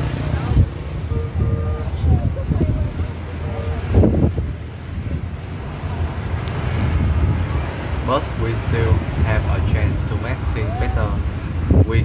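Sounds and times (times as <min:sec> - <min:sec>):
road traffic: 0:00.0 - 0:12.0
wind buffeting microphone: 0:00.0 - 0:12.0.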